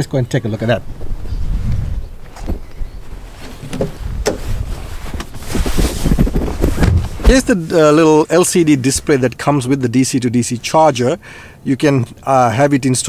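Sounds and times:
wind buffeting microphone: 0:00.7 - 0:07.6
rustle: 0:00.8 - 0:09.1.

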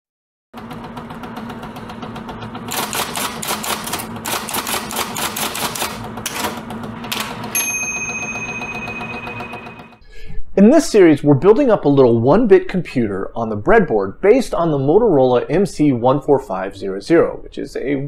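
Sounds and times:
rapid mechanical clatter: 0:00.6 - 0:07.6
bell-like ding: 0:07.5 - 0:10.0.

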